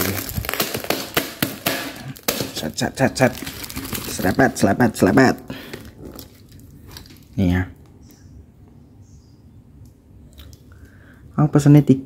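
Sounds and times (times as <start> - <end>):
plastic wrap crinkling: 0.0 - 7.4.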